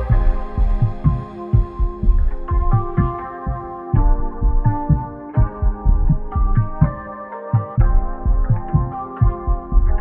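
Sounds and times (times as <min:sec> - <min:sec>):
deep bass drum thumps: 0:00.0 - 0:07.0, 0:07.8 - 0:10.0
sustained synth chords: 0:00.0 - 0:10.0.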